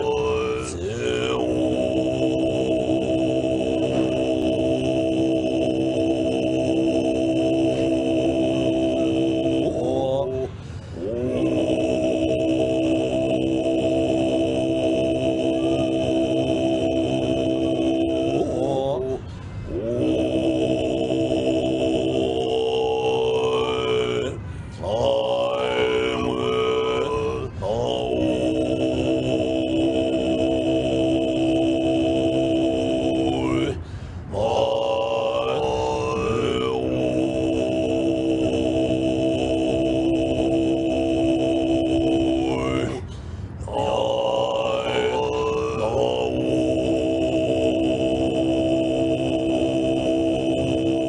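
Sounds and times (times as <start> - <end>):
throat-singing chant drone: 0.0 - 51.0.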